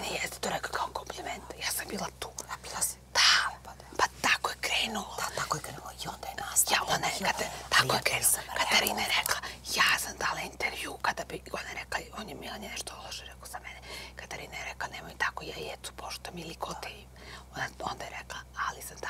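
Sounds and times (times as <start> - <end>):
women whispering: 0.0 - 13.7.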